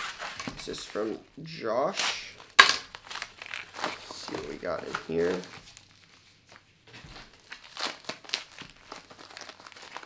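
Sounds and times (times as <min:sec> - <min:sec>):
plastic mailer crinkling: 0:01.9 - 0:10.0.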